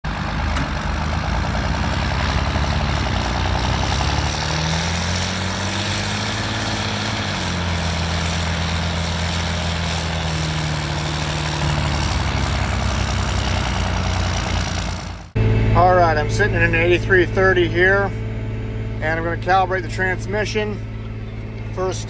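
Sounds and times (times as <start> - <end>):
tractor engine running: 0.0 - 22.0.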